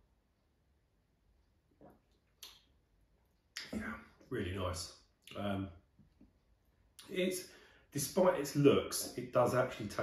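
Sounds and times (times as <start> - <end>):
lip smack: 1.8 - 2.7
person speaking: 3.5 - 6.0, 6.9 - 10.0.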